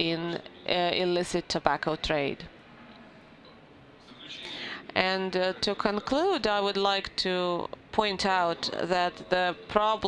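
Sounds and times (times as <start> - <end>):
intake of breath: 4.3 - 4.9.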